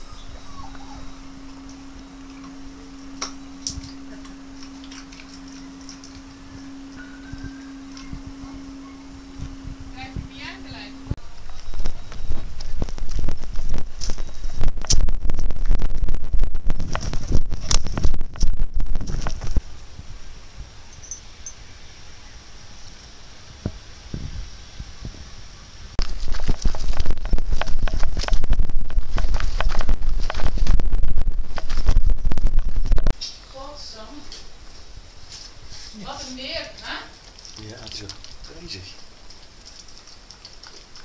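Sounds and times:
footsteps on gravel: 0:26.0 - 0:32.9.

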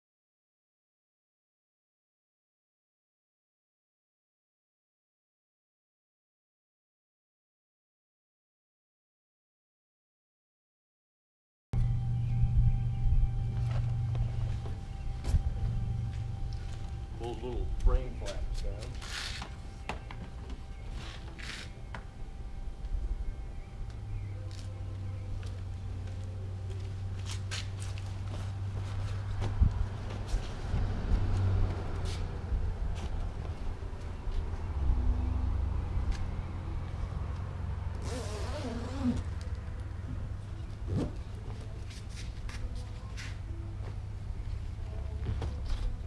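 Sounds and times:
low rumble: 0:11.8 - 0:38.0.

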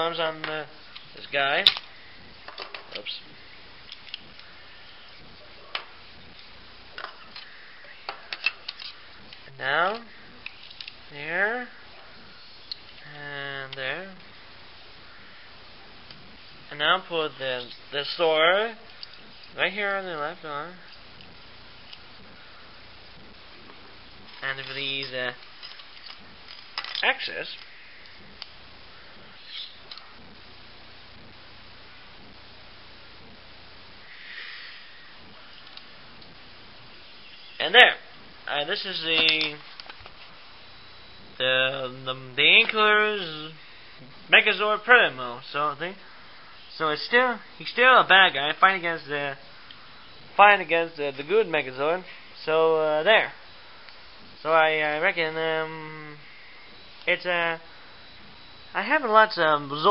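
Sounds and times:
faint room hiss: 0:00.0 - 0:59.9.

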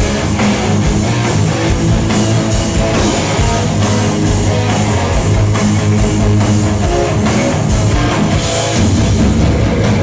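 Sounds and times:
distorted electric guitars: 0:00.0 - 0:10.0
pounding drum kit: 0:00.0 - 0:10.0.

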